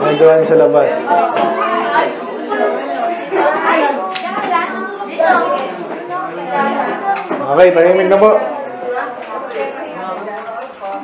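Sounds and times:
people and children talking: 0.0 - 11.0.

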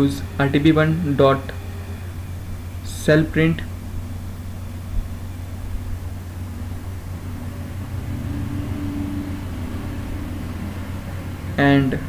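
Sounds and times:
faint humming tone: 0.0 - 12.0
low background hum: 0.0 - 12.0.

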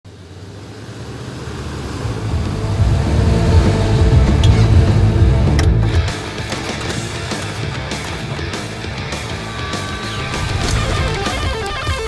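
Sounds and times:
vehicle engine approaching: 0.1 - 12.0.

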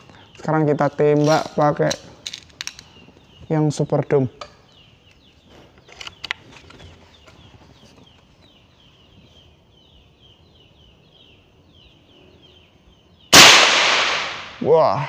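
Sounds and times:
loud air rifle shot: 13.3 - 14.6.

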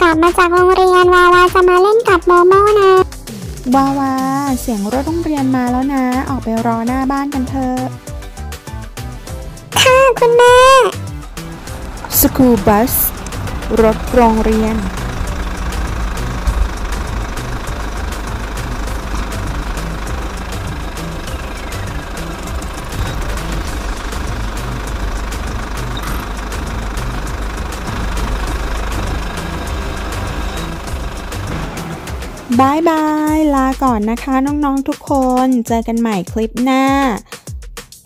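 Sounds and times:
bus engine running: 0.0 - 35.3
music: 0.0 - 38.0.

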